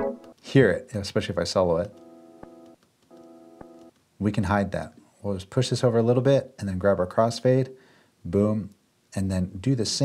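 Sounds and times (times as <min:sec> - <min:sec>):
click: 0:01.9 - 0:04.1.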